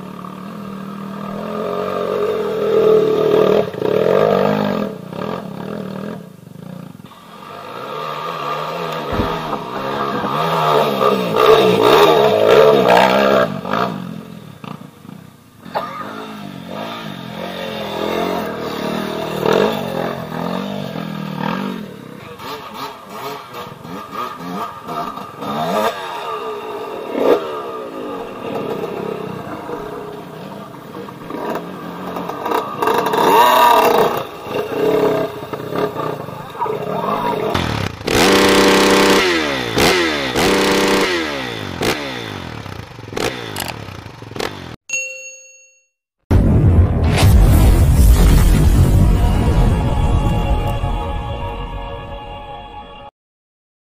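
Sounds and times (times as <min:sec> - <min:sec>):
dirt bike engines revving: 0:00.0 - 0:44.8.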